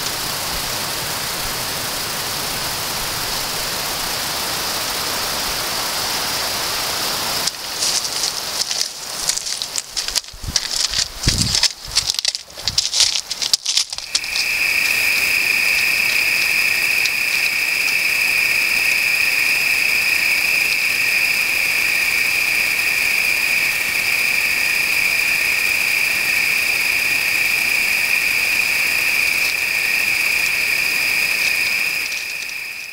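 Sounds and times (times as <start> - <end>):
crickets trilling: 0.0 - 32.9.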